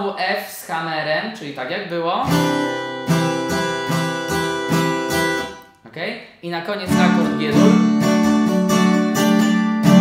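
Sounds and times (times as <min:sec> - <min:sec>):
acoustic guitar strumming: 0:02.2 - 0:05.8, 0:06.9 - 0:10.0.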